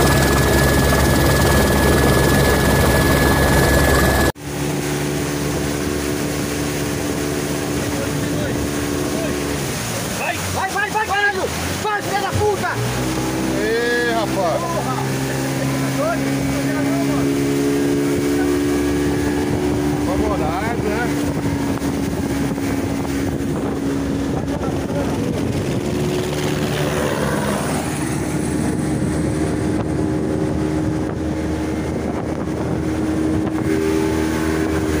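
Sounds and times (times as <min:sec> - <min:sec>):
motorboat engine humming: 0:00.0 - 0:35.0
water rushing: 0:00.0 - 0:35.0
wind on microphone: 0:14.8 - 0:35.0.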